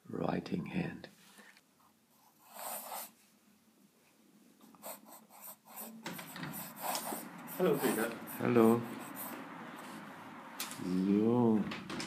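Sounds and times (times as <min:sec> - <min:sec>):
pen nib scratching paper: 0:02.2 - 0:03.1, 0:04.7 - 0:08.4.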